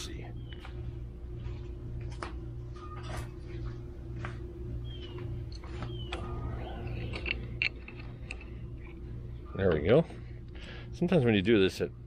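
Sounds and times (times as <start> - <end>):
pulsing mechanical hum: 0.0 - 12.0.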